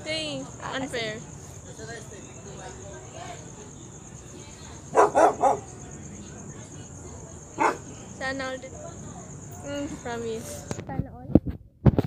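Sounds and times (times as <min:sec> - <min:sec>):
high insect drone: 0:00.0 - 0:10.7
dog barking: 0:04.9 - 0:05.7, 0:07.6 - 0:07.9.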